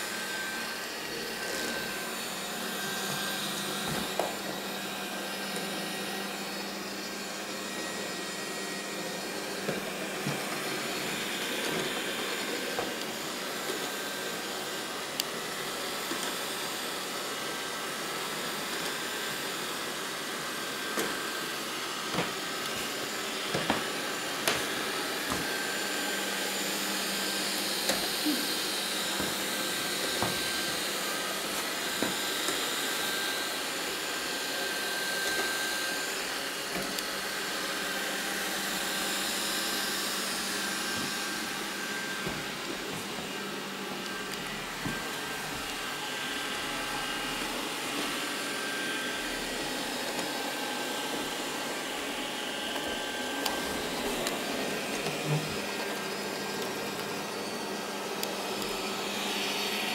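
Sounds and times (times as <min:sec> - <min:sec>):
robot vacuum cleaner running: 0:00.0 - 0:59.9.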